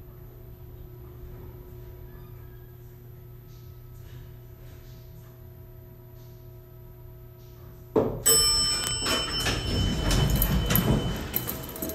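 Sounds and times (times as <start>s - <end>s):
elevator door clunk: 8.2s - 11.9s
elevator doors sliding open rattling: 8.3s - 11.9s.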